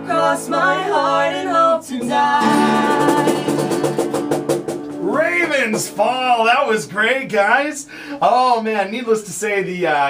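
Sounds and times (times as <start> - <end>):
acoustic guitars strummed fast: 2.0 - 7.4
man's voice: 5.0 - 10.0.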